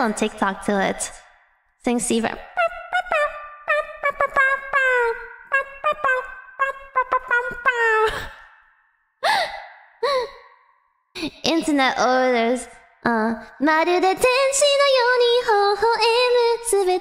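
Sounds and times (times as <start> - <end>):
woman sighing: 9.2 - 10.5.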